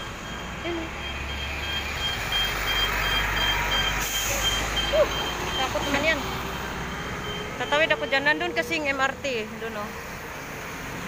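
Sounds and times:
truck warning beeper: 0.0 - 9.2
street traffic: 0.0 - 11.0.

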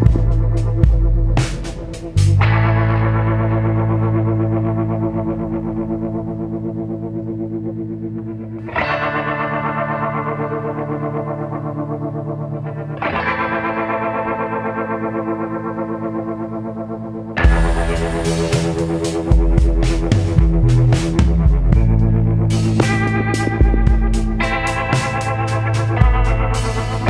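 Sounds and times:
rippling background music chords: 0.0 - 27.0.

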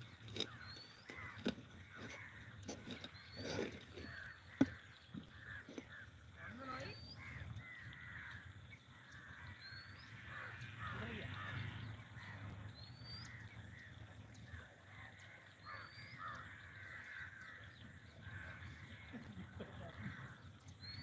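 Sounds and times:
crows cawing: 0.1 - 12.6, 13.2 - 20.6.

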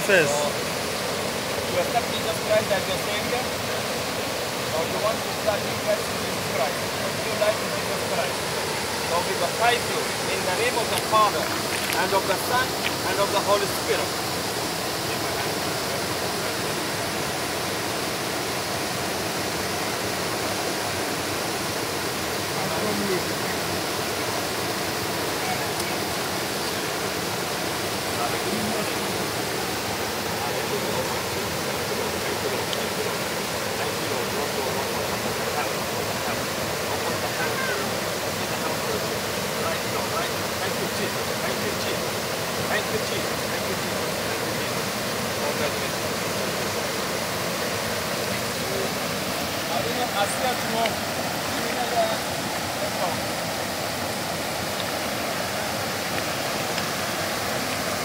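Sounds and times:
waterfall pouring over rocks: 0.0 - 58.0.

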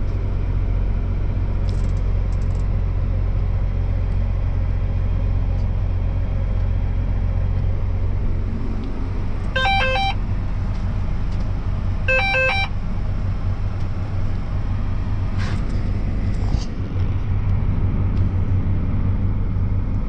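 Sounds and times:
engine drone from inside cab: 0.0 - 20.0
electronic chime of stepped beeps: 9.6 - 10.2, 12.1 - 12.7.

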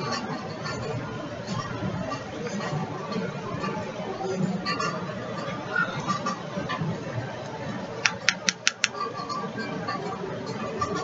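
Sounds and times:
quick sharp taps: 8.0 - 9.0.

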